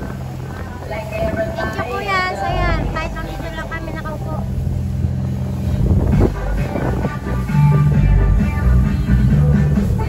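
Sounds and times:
speedboat engine drone: 0.0 - 10.0.

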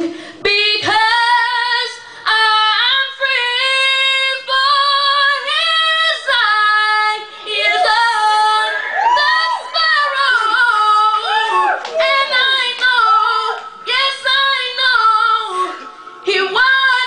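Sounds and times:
singer breathing: 0.0 - 0.5, 2.0 - 2.3.

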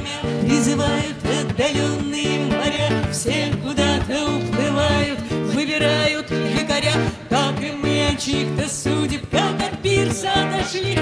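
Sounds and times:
acoustic guitar strumming: 0.0 - 11.0
group of voices singing: 0.0 - 11.0.

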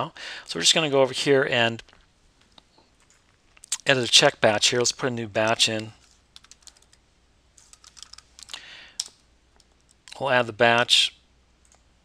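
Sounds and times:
soft hiss: 0.0 - 12.0
typing on a keyboard: 6.4 - 7.0, 7.6 - 10.2.

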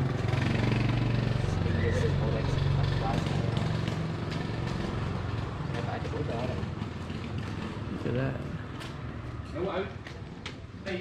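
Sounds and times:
motorbike engine running: 0.0 - 8.3.

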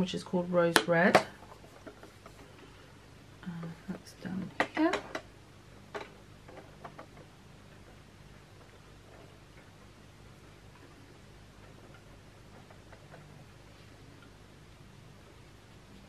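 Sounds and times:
low room hum: 0.0 - 16.0.

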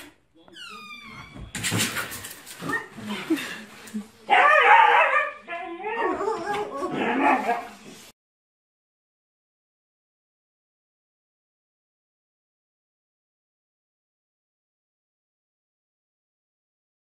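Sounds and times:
dog yowling: 4.3 - 7.8
dog whining: 5.1 - 7.8.

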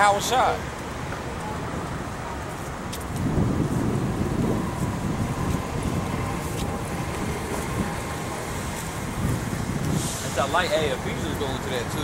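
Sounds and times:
city traffic rumble: 0.0 - 12.0
wind gusting on microphone: 0.0 - 12.0.

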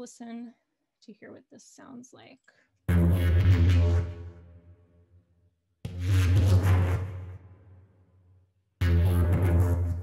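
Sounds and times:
deep synth bass note: 2.9 - 4.6, 5.8 - 7.6, 8.8 - 10.0.

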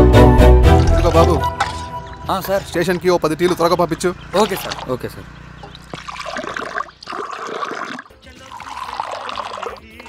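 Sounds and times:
coffee pouring into glass: 6.2 - 9.8.

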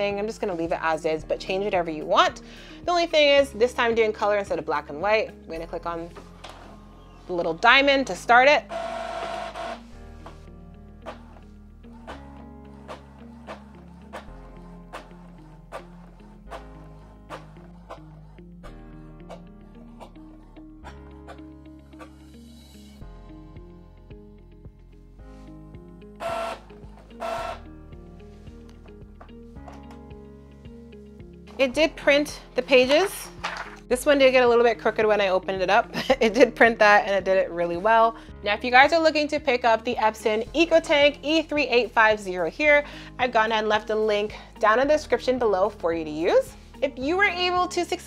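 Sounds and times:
soft background music: 0.0 - 48.0
inkjet printer whirring: 8.7 - 9.8
scanner motor whirring: 8.7 - 9.8, 26.2 - 27.6.

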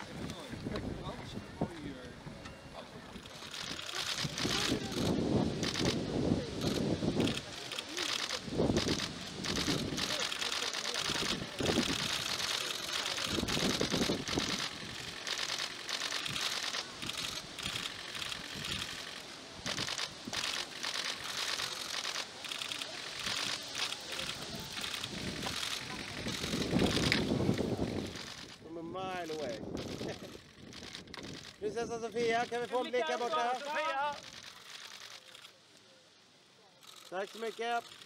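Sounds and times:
low murmured voices: 0.0 - 31.7
camera shutters clicking: 3.2 - 28.6, 29.2 - 35.5, 36.8 - 38.0.

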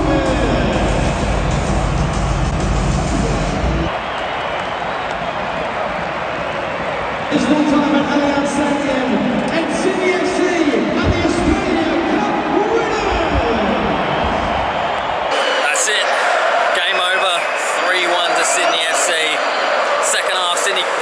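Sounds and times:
stadium crowd cheering: 0.0 - 21.0.

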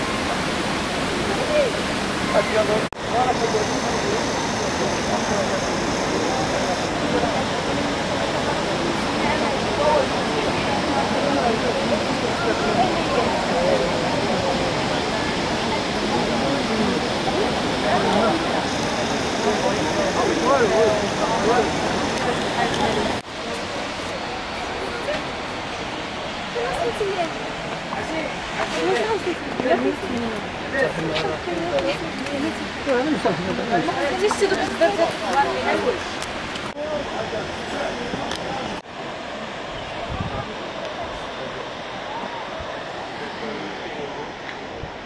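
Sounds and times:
people talking: 0.0 - 45.0
waterfall roaring: 0.0 - 45.0.

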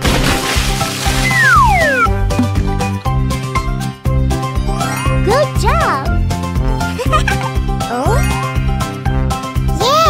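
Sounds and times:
liquid splash: 0.0 - 2.6
upbeat children's music: 1.2 - 10.0.

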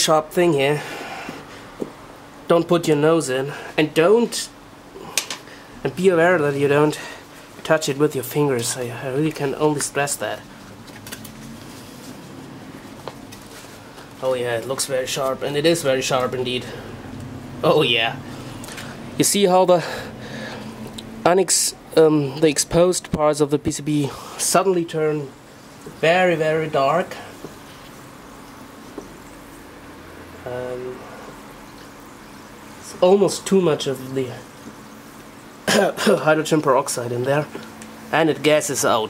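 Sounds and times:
faint hiss: 12.6 - 39.0.

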